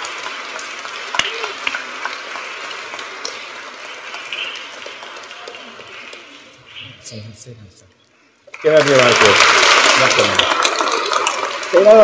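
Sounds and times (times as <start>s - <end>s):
audience applauding: 0.0s - 6.6s, 8.5s - 12.0s.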